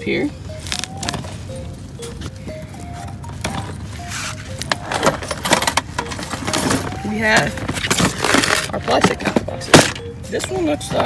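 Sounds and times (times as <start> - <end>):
simple background music: 0.0 - 11.0
plastic trays rattling: 4.8 - 10.0.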